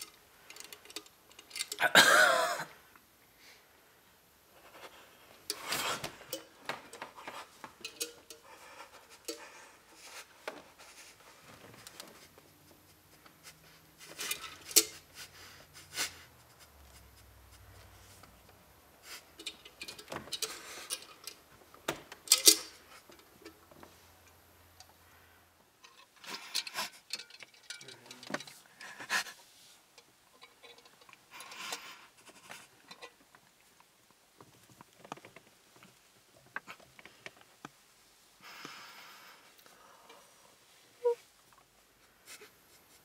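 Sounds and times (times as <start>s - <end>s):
quiet breaths: 2.7s - 19.5s, 22.8s - 27.0s, 27.6s - 33.0s, 35.8s - 43.0s.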